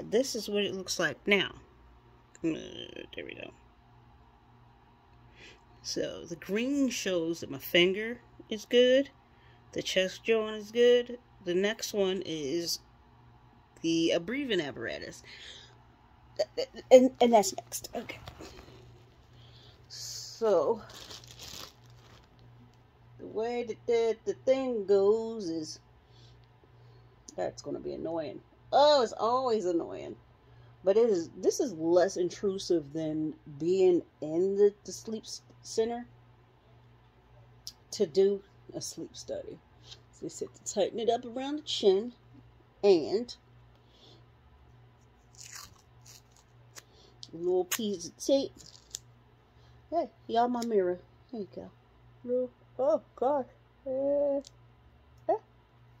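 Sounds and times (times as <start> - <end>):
rustling of medical tape: 20.3 - 22.9, 44.9 - 49.2
plastic packaging crinkling: 20.6 - 22.8, 45.2 - 46.8, 48.5 - 49.1.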